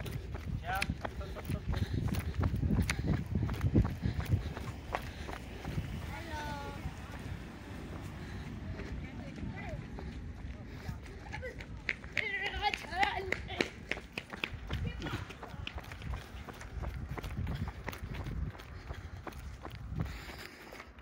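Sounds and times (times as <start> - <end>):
running footsteps on road: 0.0 - 21.0.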